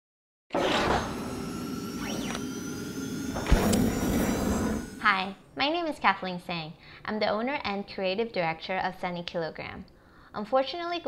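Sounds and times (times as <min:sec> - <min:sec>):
sharp hit: 0:00.6 - 0:05.4
rising and falling pitch sweep: 0:00.6 - 0:05.6.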